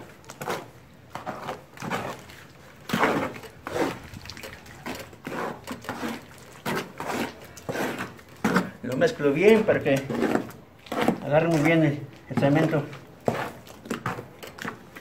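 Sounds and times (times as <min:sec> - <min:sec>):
trowel scraping wet mortar: 0:00.0 - 0:15.0.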